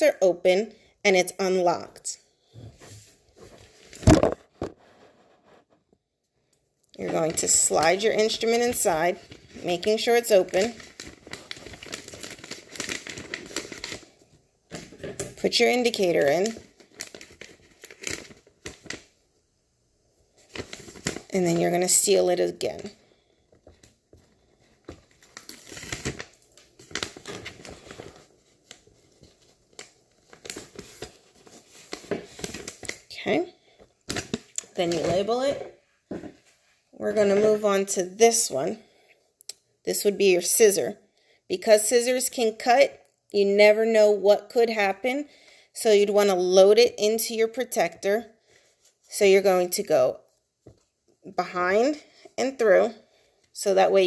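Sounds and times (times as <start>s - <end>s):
crackle-thump of pouch: 3.9s - 5.1s
plastic pouch crinkling: 7.0s - 19.2s, 20.4s - 35.5s.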